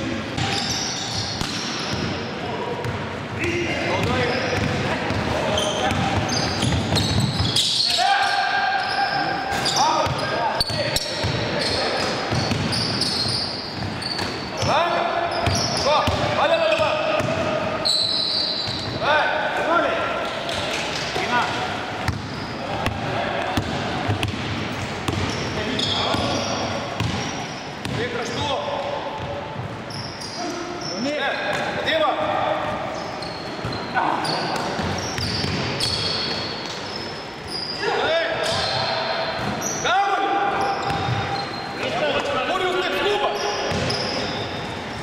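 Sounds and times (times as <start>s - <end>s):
sneaker squeaks: 0.4s - 19.1s, 20.5s - 24.5s, 25.1s - 45.0s
shoes squeaking on wooden floor: 5.5s - 8.0s, 11.5s - 14.7s, 25.2s - 27.6s, 32.8s - 39.9s, 40.6s - 45.0s
basketball bouncing: 12.3s - 12.9s, 22.0s - 25.4s, 27.0s - 28.0s, 34.6s - 36.4s, 43.7s - 44.0s.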